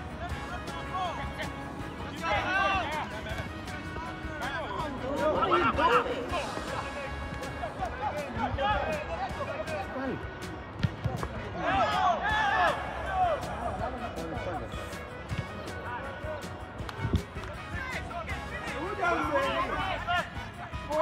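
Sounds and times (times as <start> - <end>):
background music: 0.0 - 21.0
voices shouting: 0.1 - 9.2, 11.6 - 14.6.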